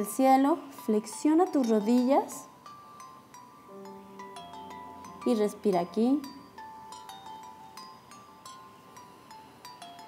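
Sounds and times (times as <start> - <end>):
bell-like struck notes: 0.8 - 10.0.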